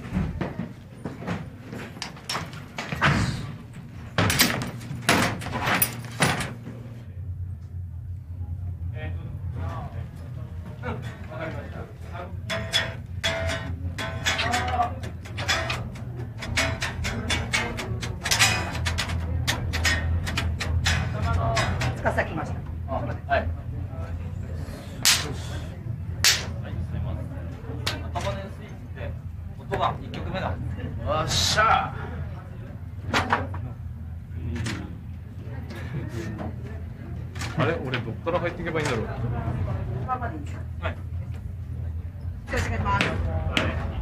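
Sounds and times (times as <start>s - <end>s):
low steady hum: 0.0s - 44.0s
heavy door banging: 4.1s - 6.6s, 12.5s - 22.7s
high-five hand slaps: 25.0s - 25.4s, 26.2s - 26.6s.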